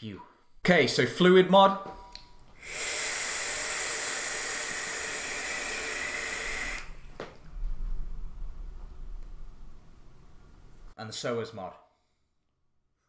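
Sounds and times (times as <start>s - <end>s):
airy hiss of vape inhale: 2.6s - 7.1s
breathy exhale: 2.6s - 7.1s.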